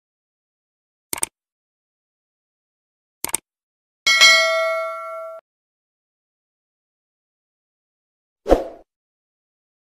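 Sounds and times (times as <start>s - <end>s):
small bell struck: 4.1s - 5.4s.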